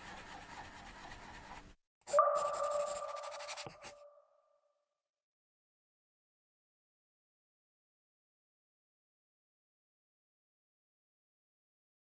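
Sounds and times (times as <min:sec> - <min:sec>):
scratchy brush-stroke noise: 0:00.0 - 0:04.0
ringing chime ping: 0:02.1 - 0:04.0.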